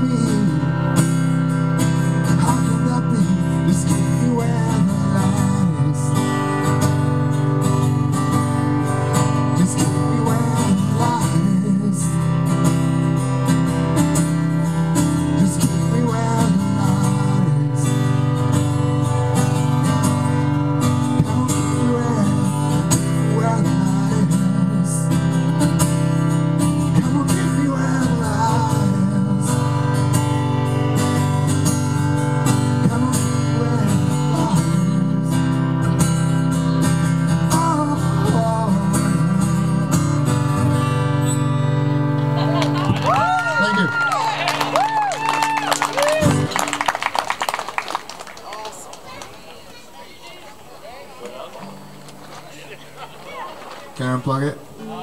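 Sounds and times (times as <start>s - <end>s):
acoustic guitar strumming: 0.0s - 47.1s, 51.0s - 53.2s, 53.9s - 55.0s.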